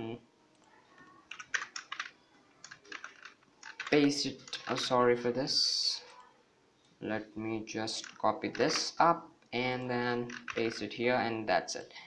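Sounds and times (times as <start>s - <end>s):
keyboard keys clicking: 1.3s - 4.9s, 10.2s - 10.8s.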